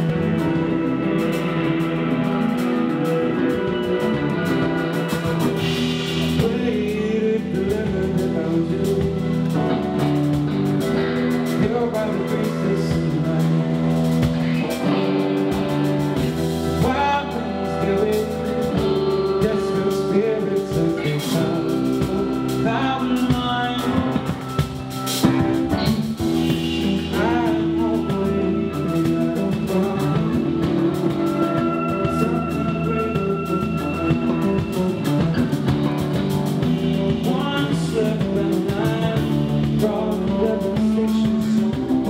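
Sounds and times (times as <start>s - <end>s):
bass guitar: 0.0s - 42.0s
drum kit: 0.0s - 42.0s
electric guitars: 0.0s - 42.0s
man singing lead vocal: 0.0s - 42.0s.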